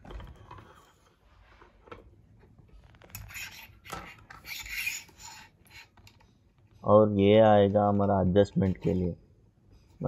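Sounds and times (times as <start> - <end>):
metal holder scraping on rod: 3.0 - 6.1.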